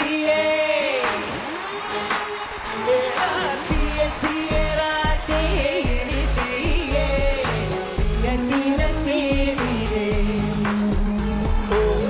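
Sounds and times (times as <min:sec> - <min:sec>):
song with band backing: 0:00.0 - 0:12.0
heavy bass beat: 0:03.7 - 0:12.0.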